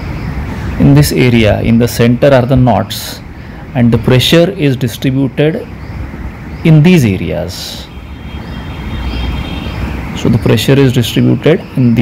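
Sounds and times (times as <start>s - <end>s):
low background rumble and hiss: 0.0s - 12.0s.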